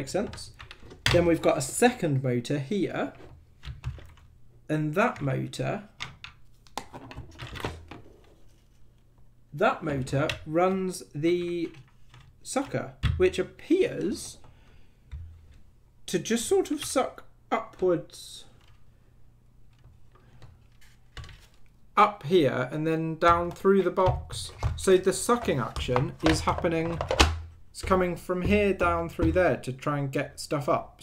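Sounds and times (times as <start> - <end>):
plastic parts clicking: 11.4 - 13.2, 23.2 - 29.4.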